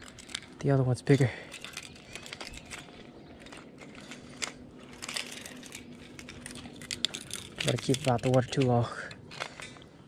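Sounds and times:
light clicks and rustling: 0:00.0 - 0:10.0.

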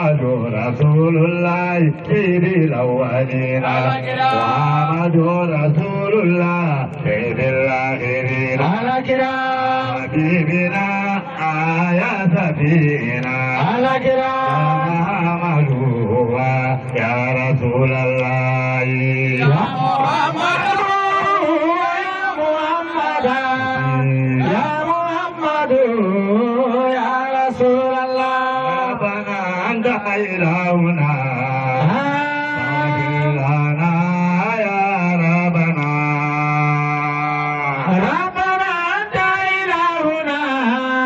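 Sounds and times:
man chanting into a microphone: 0:00.0 - 0:41.0.

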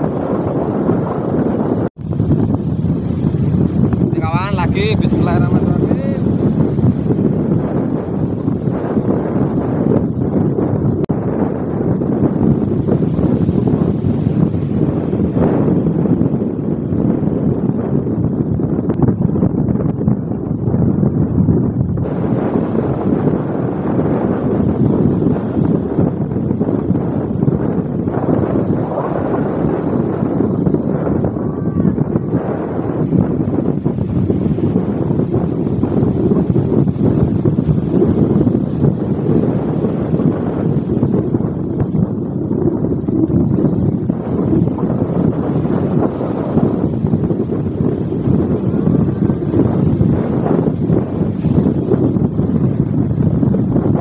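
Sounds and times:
breaking surf: 0:00.0 - 0:18.5, 0:21.8 - 0:54.0
wind buffeting microphone: 0:00.0 - 0:54.0.

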